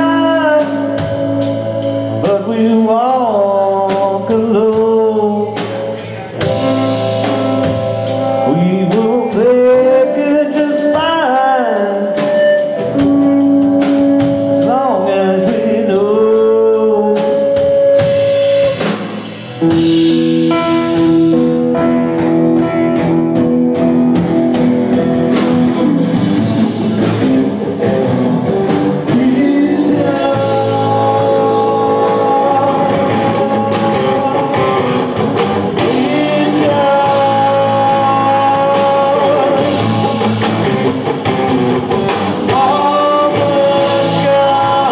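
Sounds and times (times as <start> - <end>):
drum kit beat: 0.0 - 44.9
electric guitar lead: 0.0 - 44.9.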